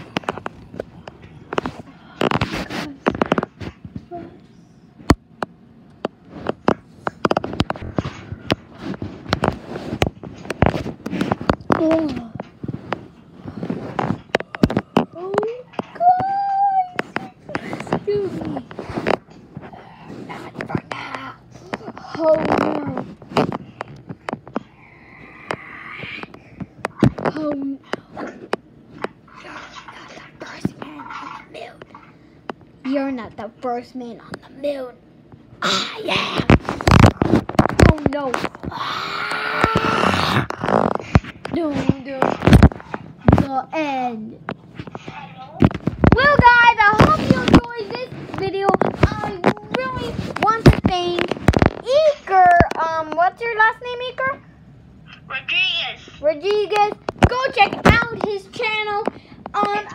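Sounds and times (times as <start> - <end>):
child whispering: 19.6 - 23.0, 24.6 - 26.3, 29.4 - 31.7.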